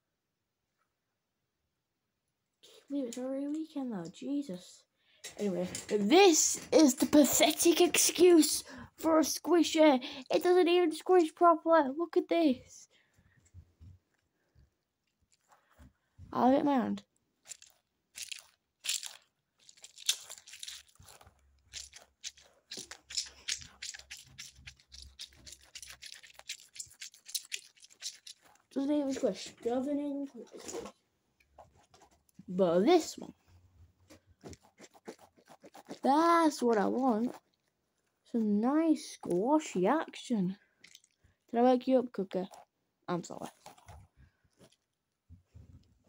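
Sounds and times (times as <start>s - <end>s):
squishy toy squelching: 17.4s - 31.0s, 34.0s - 38.4s, 40.8s - 41.2s, 42.4s - 44.9s.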